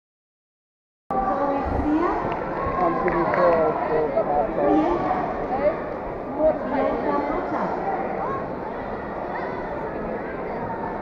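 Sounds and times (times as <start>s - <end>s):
crowd chatter: 1.1s - 11.0s.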